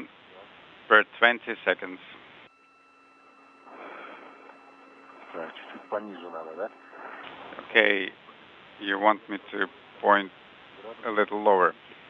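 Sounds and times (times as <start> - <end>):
radio hiss: 0.0 - 12.0
steady hum tones: 0.0 - 12.0
soft rush of noise: 2.6 - 11.1
faint broken speech: 3.6 - 11.1.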